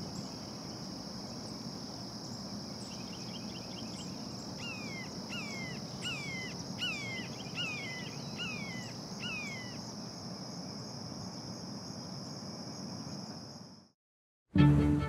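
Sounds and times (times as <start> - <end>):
insect trill: 0.0 - 14.0.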